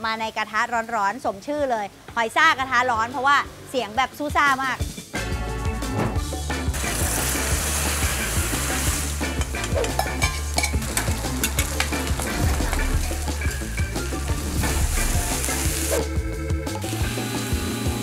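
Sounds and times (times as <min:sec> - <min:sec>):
batter sizzling in hot oil: 0:06.7 - 0:16.1.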